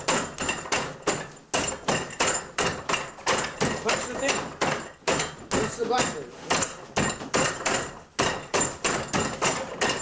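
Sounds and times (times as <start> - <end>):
hard wooden knocks: 0.0 - 10.0.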